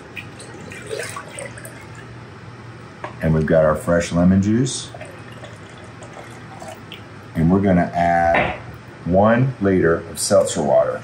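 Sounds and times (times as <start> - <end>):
syrup trickling into pitcher: 4.9 - 7.1.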